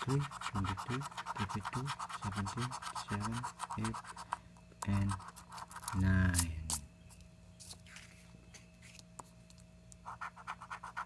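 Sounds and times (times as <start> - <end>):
coin scratching lottery ticket: 0.0 - 6.8, 10.0 - 11.0.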